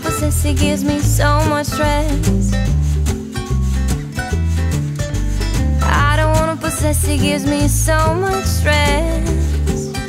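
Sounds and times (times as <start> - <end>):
person singing: 0.0 - 2.7, 5.8 - 10.0
bass and drums backing: 0.0 - 10.0.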